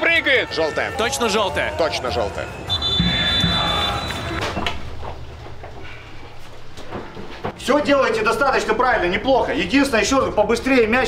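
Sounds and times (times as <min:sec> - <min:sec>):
referee's whistle blast: 0:02.5 - 0:04.6.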